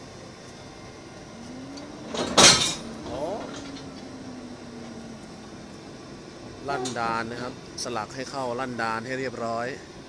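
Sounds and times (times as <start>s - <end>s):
train mechanical hum: 0.0s - 10.0s
faint low rising tone: 0.6s - 8.3s.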